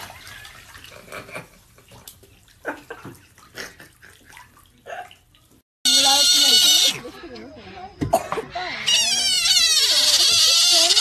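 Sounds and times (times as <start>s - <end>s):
otter squealing: 5.9s - 11.0s.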